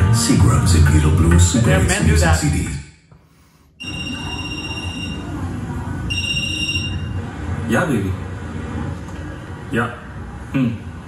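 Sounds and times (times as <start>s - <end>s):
low background noise: 0.0s - 11.0s
phone ringtone: 3.8s - 5.4s, 6.1s - 7.1s.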